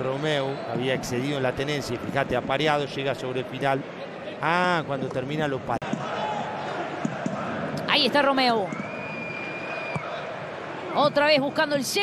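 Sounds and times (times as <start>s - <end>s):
stadium crowd murmur: 0.0s - 8.4s, 9.5s - 12.0s.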